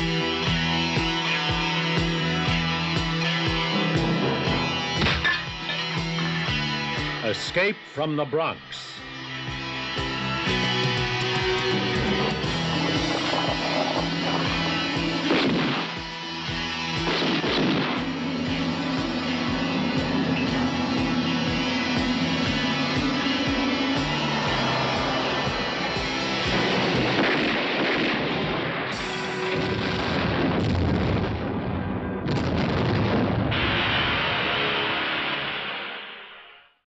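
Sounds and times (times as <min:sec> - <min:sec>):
rock music with steady beat: 0:00.0 - 0:30.4
explosions: 0:12.8 - 0:16.2, 0:17.0 - 0:18.2, 0:26.4 - 0:36.1
gunfire and blasts: 0:26.9 - 0:31.4.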